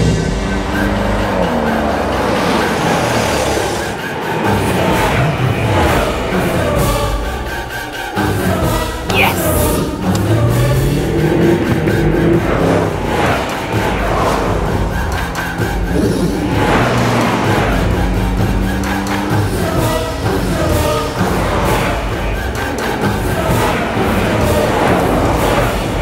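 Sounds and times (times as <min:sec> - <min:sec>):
cars speeding past: 0:00.0 - 0:06.2, 0:09.7 - 0:26.0
dramatic orchestral score with choir: 0:00.0 - 0:26.0.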